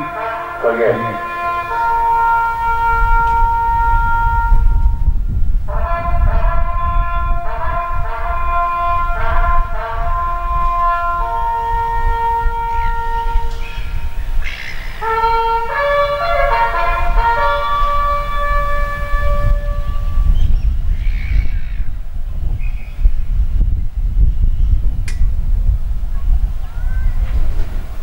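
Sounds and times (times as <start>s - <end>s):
solo brass bugle call: 0.0s - 21.8s
wind rumble on microphone: 0.0s - 28.0s.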